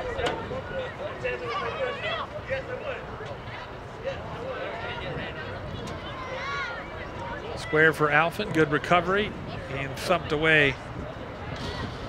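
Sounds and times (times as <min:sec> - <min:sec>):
open-air background noise: 0:00.0 - 0:12.0
voices shouting on field: 0:00.0 - 0:12.0.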